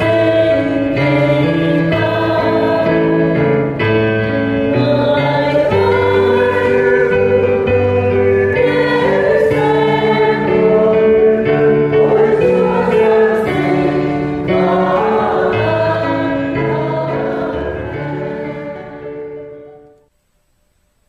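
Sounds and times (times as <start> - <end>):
choir singing a hymn: 0.0 - 20.0
instrumental accompaniment: 0.0 - 20.1.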